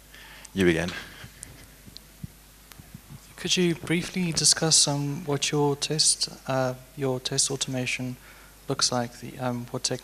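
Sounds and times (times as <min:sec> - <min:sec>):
pa system hum: 0:00.0 - 0:10.0
microphone handling knocks: 0:01.2 - 0:04.6.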